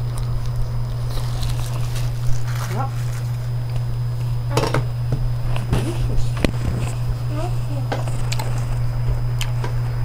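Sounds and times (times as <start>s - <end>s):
man chewing a sandwich: 0.0s - 4.5s, 8.0s - 10.0s
low hum: 0.0s - 10.0s
food packaging rustling: 0.8s - 4.4s.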